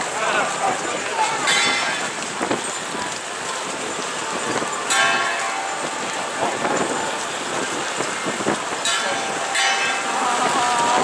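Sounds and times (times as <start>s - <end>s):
walking crowd on a road: 0.0s - 11.0s.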